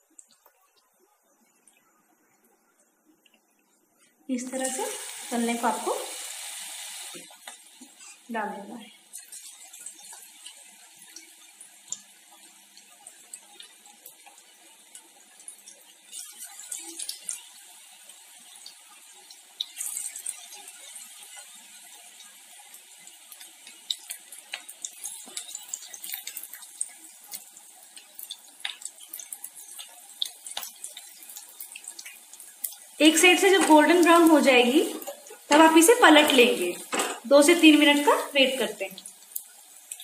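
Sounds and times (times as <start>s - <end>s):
food deep-frying in oil: 4.3s - 40.0s.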